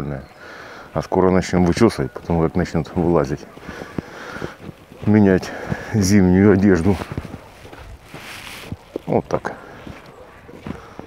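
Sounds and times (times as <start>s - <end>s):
footsteps on frosty path: 0.6s - 11.0s.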